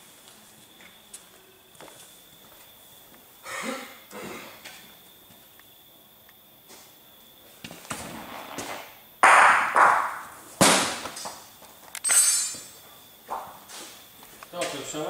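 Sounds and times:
bocce balls knocking: 9.2 - 11.4.

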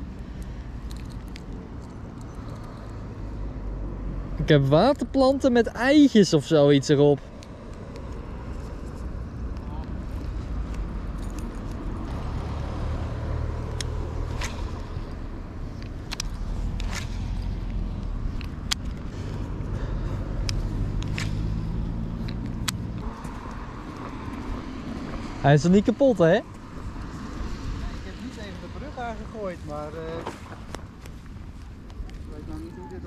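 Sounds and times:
vehicle engine rumbling: 0.0 - 33.0
light clicks: 15.7 - 19.1.

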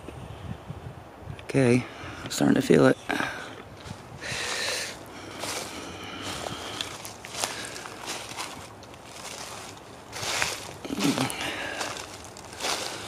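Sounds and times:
footsteps crunching dry leaves: 3.8 - 13.0.

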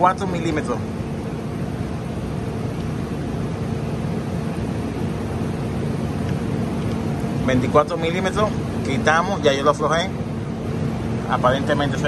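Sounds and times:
machine hum with hiss: 0.0 - 12.0.

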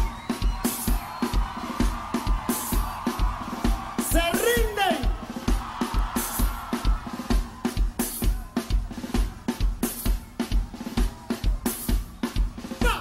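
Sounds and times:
kick drum beat: 0.0 - 13.0.

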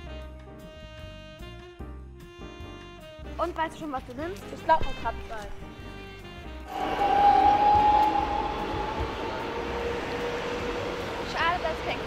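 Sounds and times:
low tone: 6.7 - 12.0
street traffic noise: 6.7 - 12.0
tram electric motor whine: 6.7 - 12.0.

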